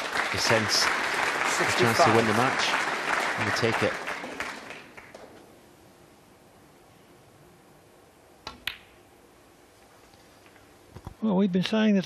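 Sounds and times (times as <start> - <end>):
applause: 0.0 - 5.3.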